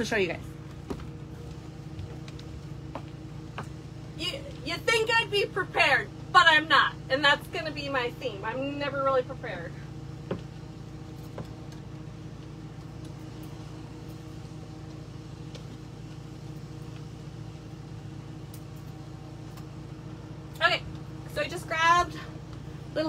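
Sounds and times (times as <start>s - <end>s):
low mechanical machine hum: 0.0s - 23.0s.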